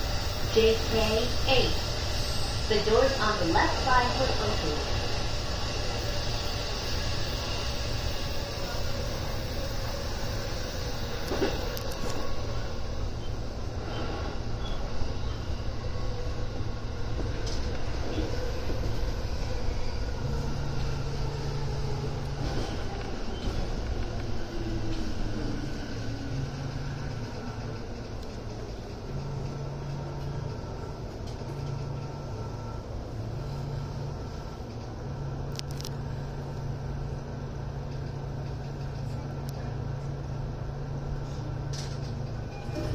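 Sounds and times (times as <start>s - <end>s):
train wheels rumbling on rail: 0.0s - 42.9s.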